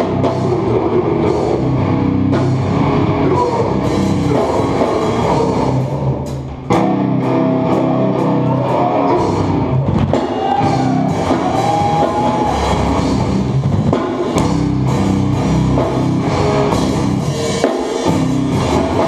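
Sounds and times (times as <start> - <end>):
hardcore band playing loud: 0.0 - 19.0.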